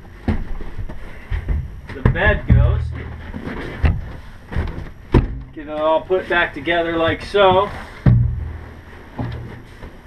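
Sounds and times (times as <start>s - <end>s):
body thumping onto cushions: 0.2s - 5.5s.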